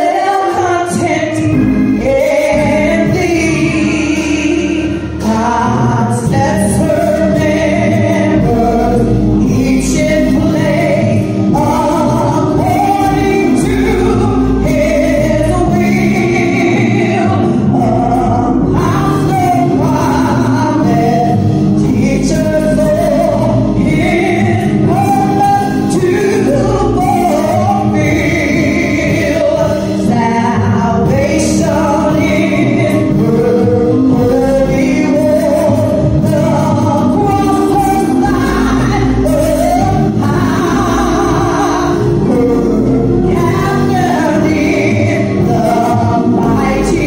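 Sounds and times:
woman singing gospel: 0.0 - 47.0.

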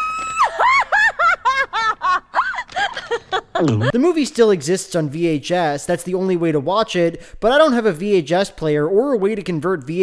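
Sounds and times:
cartoon woman laughing shrilly: 0.0 - 4.0.

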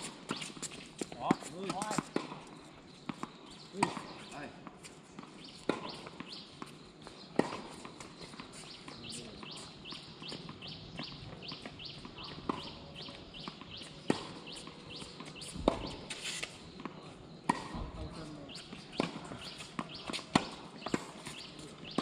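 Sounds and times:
tennis balls hit by racquets: 0.0 - 22.0
bird chirping: 5.4 - 7.3, 8.6 - 16.4, 18.0 - 20.2.

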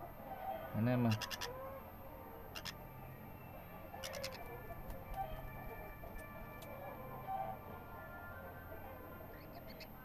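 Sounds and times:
parrot chick clicking chatter: 1.1 - 1.6, 2.6 - 2.8, 4.0 - 5.3.

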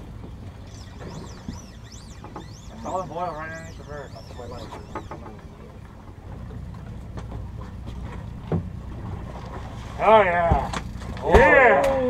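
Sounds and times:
boat engine rumble: 0.0 - 12.0.

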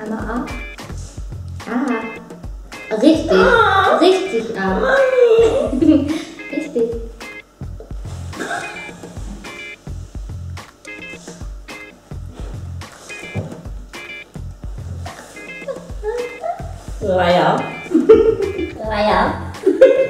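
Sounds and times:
background music with steady beat: 0.0 - 20.0.

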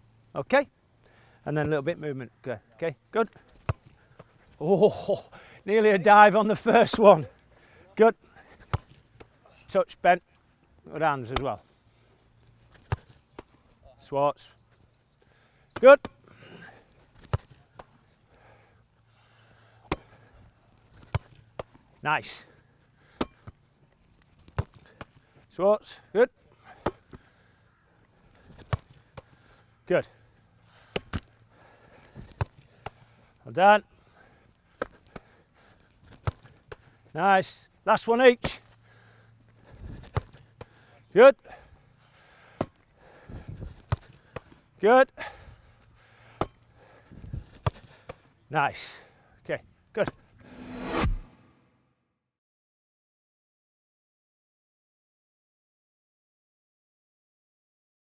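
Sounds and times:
football thuds: 12.8 - 13.5, 39.7 - 40.7, 43.4 - 44.6, 47.2 - 48.2.

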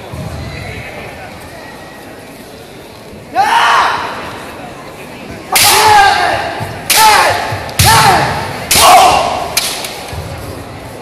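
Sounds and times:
shouts echoing in a hall: 3.3 - 4.5, 5.4 - 10.2
bamboo swords cracking: 5.6 - 6.0, 6.9 - 8.1, 8.7 - 10.1.

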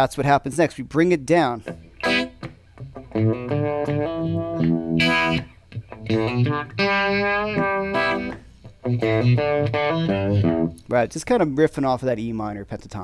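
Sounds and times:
electric guitar riff: 1.6 - 11.0.

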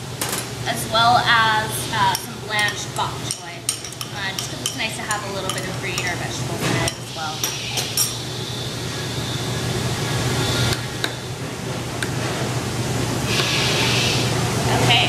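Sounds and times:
steady low hum: 0.0 - 15.0
metal utensil clinking on pot: 2.1 - 6.2.

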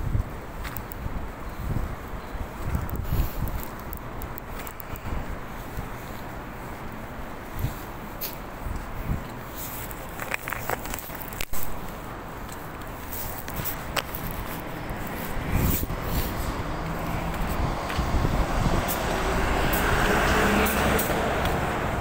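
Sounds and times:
footsteps on asphalt: 0.0 - 22.0
street noise: 0.0 - 22.0.

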